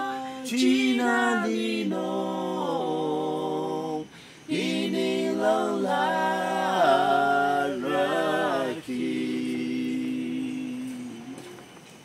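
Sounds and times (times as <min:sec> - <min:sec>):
voices singing a hymn: 0:00.0 - 0:12.0.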